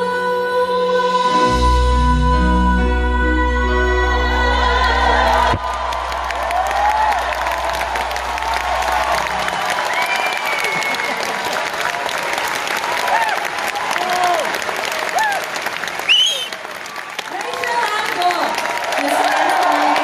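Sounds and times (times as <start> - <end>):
audience applauding: 4.9 - 20.0
shouts and whoops: 4.9 - 20.0.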